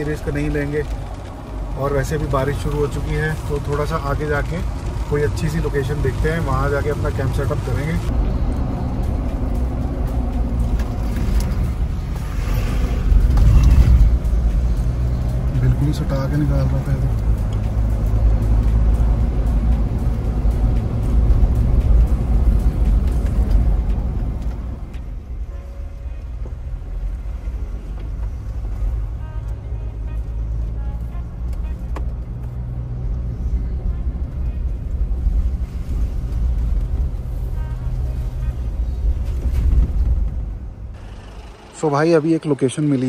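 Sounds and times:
car engine and road rumble: 0.0 - 43.0.

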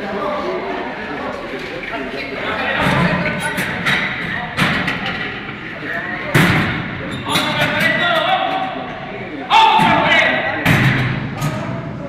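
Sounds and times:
indistinct voices echoing: 0.0 - 12.0.

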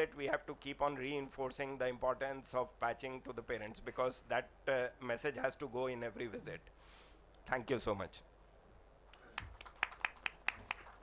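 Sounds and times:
sparse hand claps: 9.1 - 11.0.

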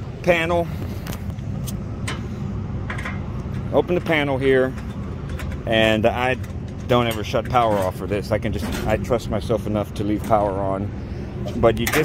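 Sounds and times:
refrigeration machinery hum: 0.0 - 12.0.

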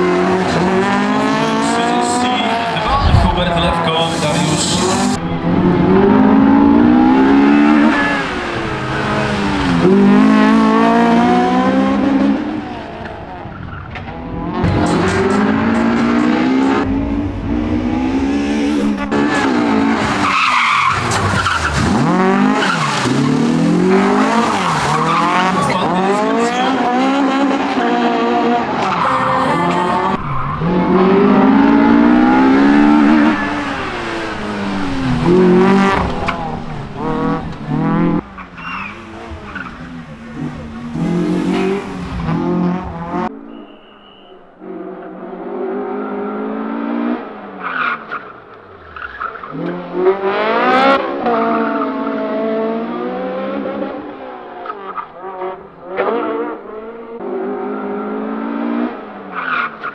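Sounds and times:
rally car engine revving: 0.0 - 59.9.

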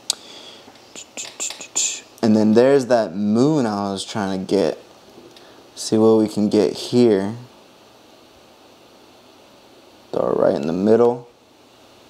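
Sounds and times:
short hissing sounds: 0.0 - 2.2
man whispering: 0.9 - 2.1.

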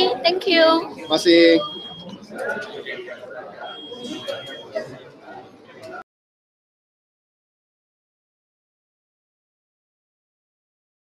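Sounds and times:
thin steady high tone: 0.0 - 4.9
indistinct chatter: 0.0 - 6.0.

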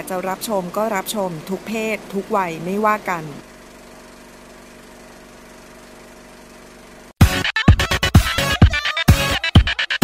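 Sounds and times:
woman announcing: 0.0 - 3.4.

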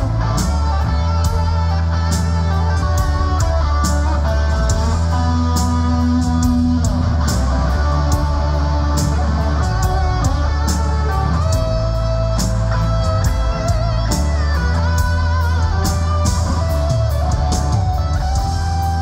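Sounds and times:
bass guitar: 0.0 - 19.0
drums and cymbals: 0.0 - 19.0
electric guitar: 0.0 - 19.0.

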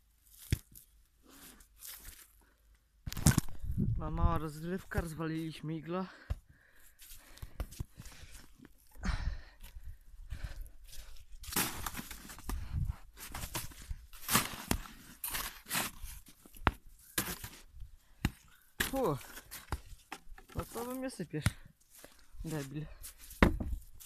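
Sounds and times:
shovel digging into packed snow: 11.4 - 12.5, 13.2 - 16.4, 17.0 - 17.7.

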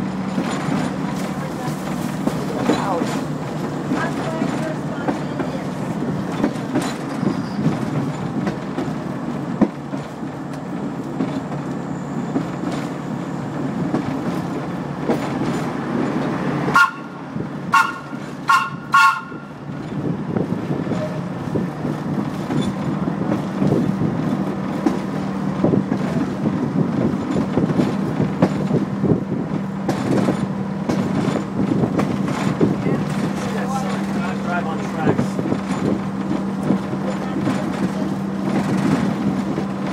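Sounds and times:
railcar motor hum: 0.0 - 39.9
railcar horn toots: 16.7 - 19.7.

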